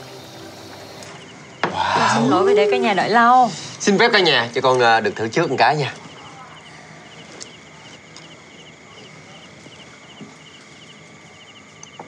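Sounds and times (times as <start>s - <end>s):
crickets chirping: 0.0s - 12.0s
faint clicks: 11.8s - 12.0s.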